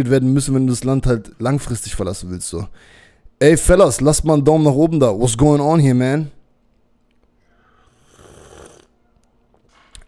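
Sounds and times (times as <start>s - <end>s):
person slurping drink: 7.9s - 8.9s.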